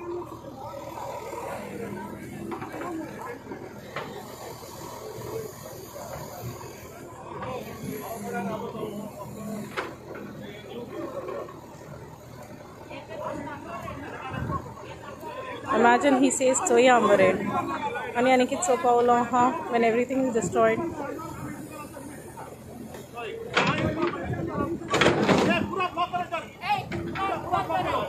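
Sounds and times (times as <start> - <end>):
crowd talking: 0.0 - 28.0.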